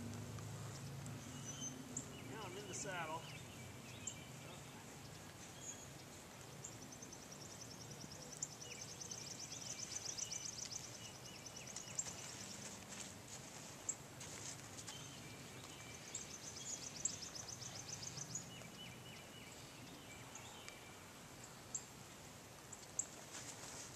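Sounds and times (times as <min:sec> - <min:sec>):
bird calls: 0:00.5 - 0:12.9, 0:14.8 - 0:21.9
songbird high rapid trill: 0:01.2 - 0:04.7.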